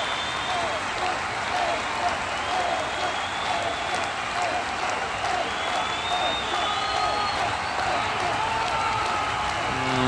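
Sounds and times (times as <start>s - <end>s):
audience applauding: 0.0s - 10.0s
crowd voices: 9.2s - 10.0s.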